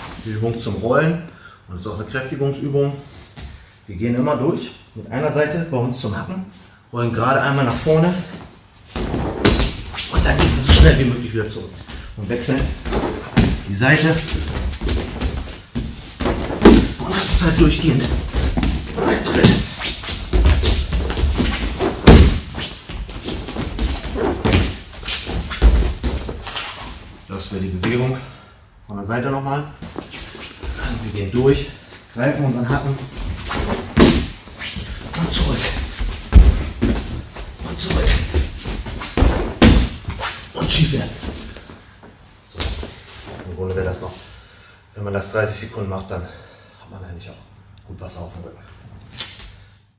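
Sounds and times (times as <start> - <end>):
body thudding on training mat: 8.9 - 11.1, 11.9 - 27.1, 33.1 - 41.7.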